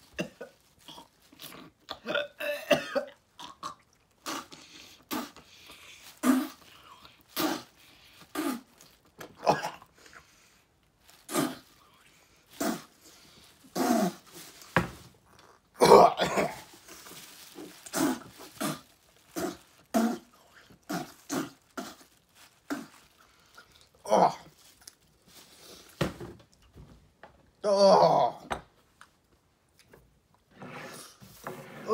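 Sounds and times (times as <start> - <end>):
man gagging and dry-heaving: 15.8 - 16.8, 24.0 - 24.5, 27.6 - 28.5.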